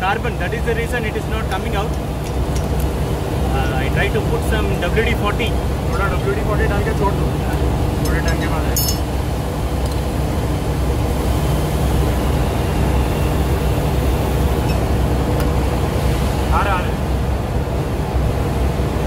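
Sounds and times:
engine-room machinery drone: 0.0 - 19.0.

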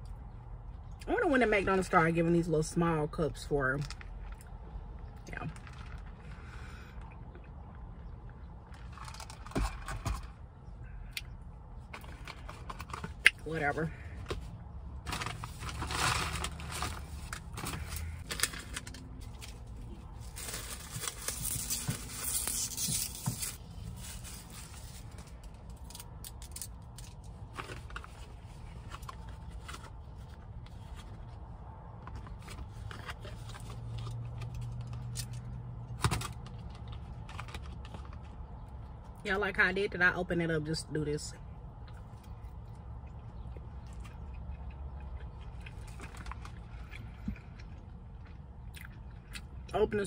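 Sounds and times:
food packaging crinkling and tearing: 8.7 - 10.0, 15.0 - 31.4, 32.1 - 38.4, 45.4 - 46.9.

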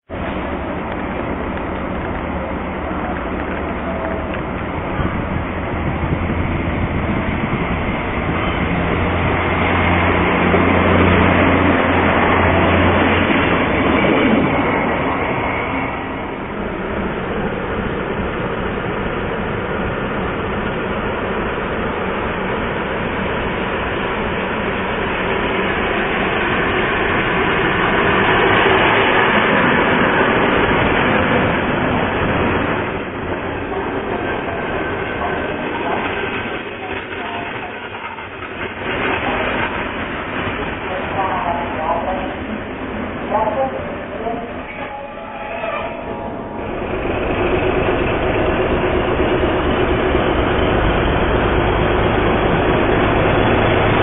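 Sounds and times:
train wheels on rails: 0.1 - 54.0.

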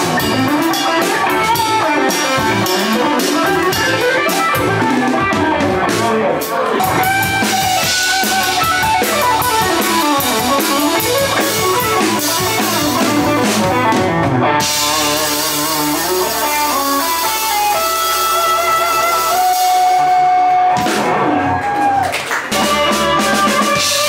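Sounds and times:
drum kit: 0.0 - 24.0
electric guitar: 0.0 - 24.0.

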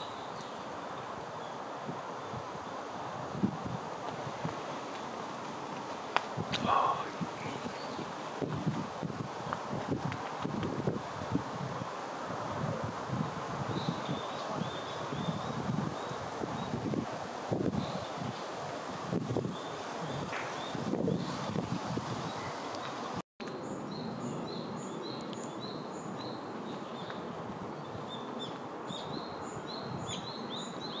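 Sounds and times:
rustling leaves: 0.0 - 31.0
wind: 0.0 - 31.0.

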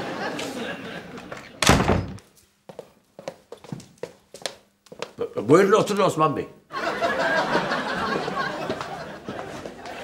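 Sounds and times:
door slamming shut: 1.6 - 2.2.

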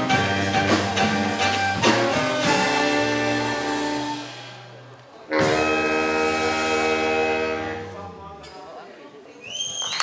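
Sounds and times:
saxophone quartet held chord: 5.3 - 8.4.

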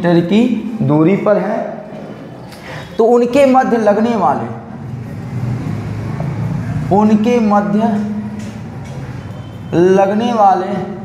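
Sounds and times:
road vehicle rumbling: 4.6 - 10.2.

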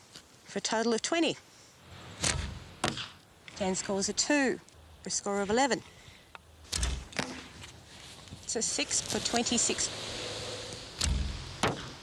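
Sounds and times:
arrow striking target: 2.1 - 3.2, 6.7 - 7.6, 10.6 - 12.0.

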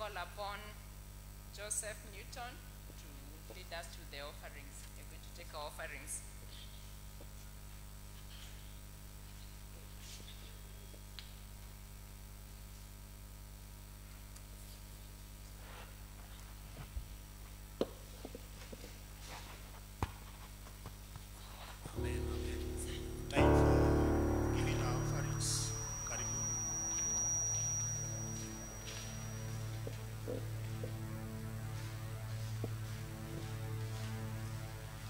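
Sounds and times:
faint electrical hum: 0.0 - 35.0.

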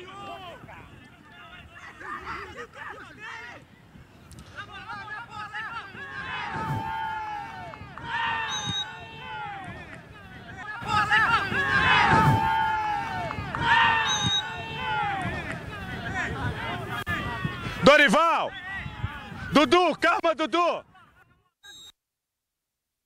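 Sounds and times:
people shouting and calling out: 0.0 - 21.8.

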